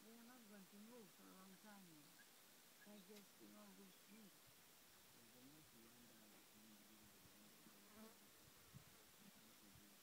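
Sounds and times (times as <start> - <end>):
fly buzzing: 7.5 - 9.4.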